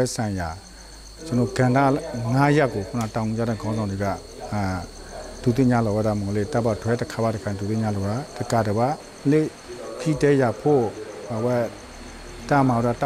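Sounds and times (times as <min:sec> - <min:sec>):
insects chorus: 0:00.0 - 0:13.0
man talking over microphone: 0:01.2 - 0:11.8.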